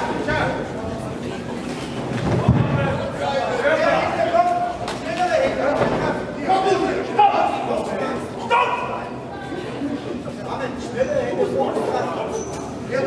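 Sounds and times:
coaches and spectators calling out: 2.5 - 13.0.

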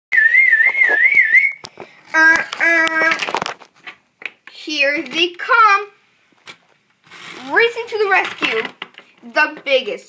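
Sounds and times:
person whistling high note: 0.1 - 1.7.

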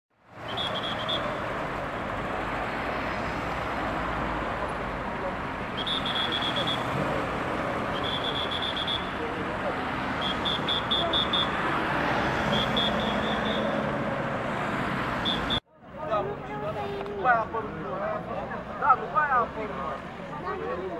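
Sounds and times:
street traffic passing cars: 0.1 - 20.9.

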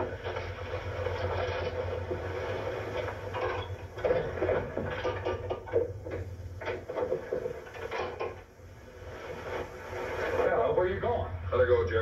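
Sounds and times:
wood and crockery clattering: 0.0 - 8.5
steady low hum: 0.0 - 12.0.

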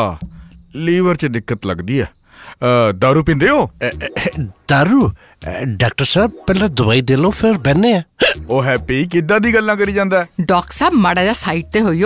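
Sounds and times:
man doing comic voice sounds: 3.7 - 4.7, 8.1 - 9.6.

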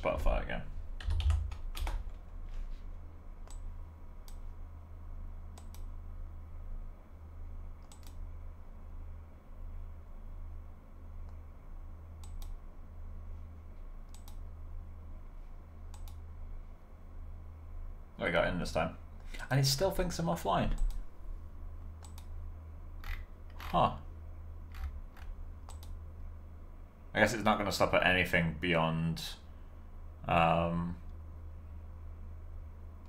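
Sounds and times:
low electrical hum: 0.0 - 33.0
keyboard and mouse clicks: 1.0 - 2.2, 3.4 - 4.4, 5.5 - 5.9, 7.8 - 8.2, 12.2 - 12.6, 14.1 - 14.4, 15.9 - 16.2, 22.0 - 22.3, 24.7 - 26.0.

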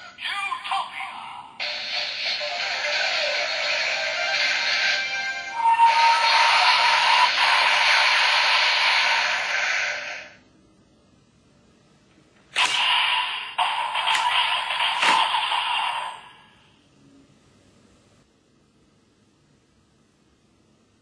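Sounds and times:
electronic music and effects: 1.6 - 10.2, 12.6 - 16.4.

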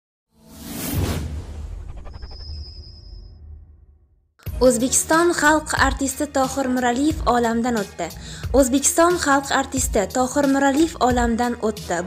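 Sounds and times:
whoosh: 0.4 - 4.3.

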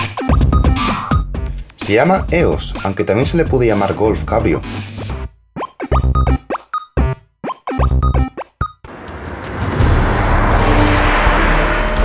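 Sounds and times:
car driving past: 8.9 - 12.0.

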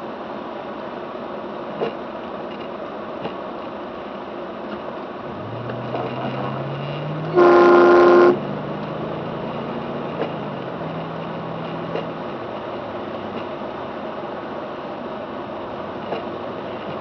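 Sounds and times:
car engine hum from inside: 3.8 - 17.0
car horn: 5.8 - 8.6.

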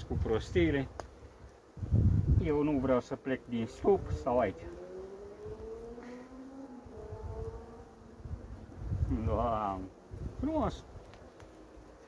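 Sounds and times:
honeybees buzzing: 0.9 - 12.0.

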